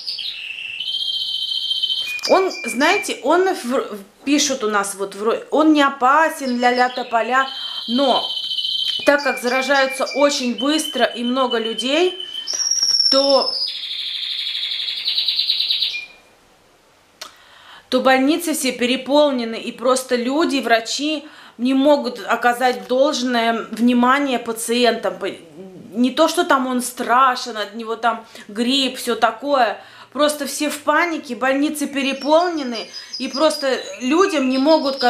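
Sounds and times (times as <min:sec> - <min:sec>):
songbird trilling: 0:00.0 - 0:03.2, 0:06.4 - 0:16.2, 0:31.6 - 0:35.0.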